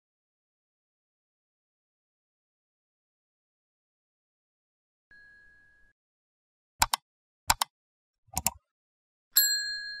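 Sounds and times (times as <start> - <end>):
mouse clicks: 6.8 - 7.7, 8.3 - 8.6.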